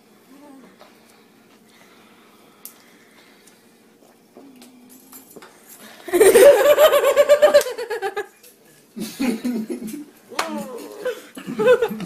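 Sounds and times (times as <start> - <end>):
person laughing loudly: 6.1 - 8.3, 10.6 - 12.0.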